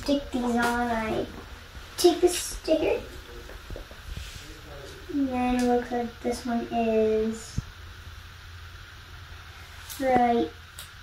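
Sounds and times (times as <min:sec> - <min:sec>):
faint hiss: 0:00.1 - 0:11.0.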